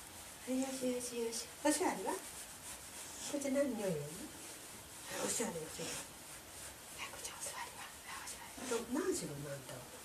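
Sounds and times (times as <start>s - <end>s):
woman's voice: 0.4s - 2.2s, 3.2s - 4.4s, 5.1s - 6.1s, 8.6s - 9.8s.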